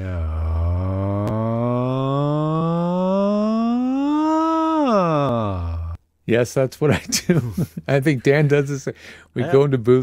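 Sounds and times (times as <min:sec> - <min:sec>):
man's voice gliding sustained tone: 0:00.0 - 0:06.0.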